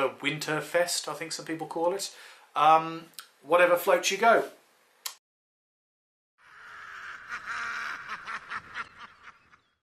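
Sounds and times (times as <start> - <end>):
maniacal cackling laugh: 6.4 - 9.8.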